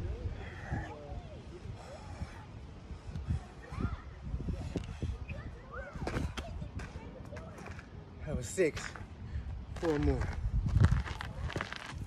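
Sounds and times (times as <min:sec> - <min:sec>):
footsteps on gravel: 0:09.7 - 0:12.0.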